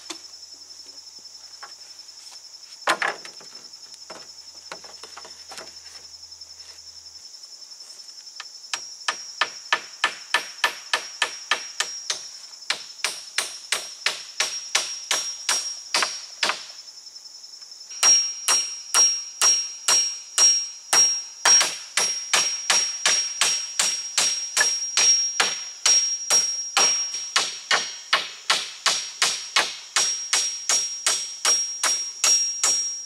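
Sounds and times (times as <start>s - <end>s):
hammer striking wooden poles: 8.7s - 16.8s, 17.9s - 33.0s.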